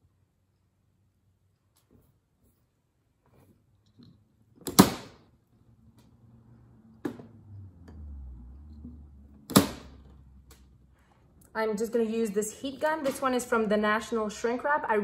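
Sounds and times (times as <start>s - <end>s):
soft handling noise: 1.5s - 4.6s.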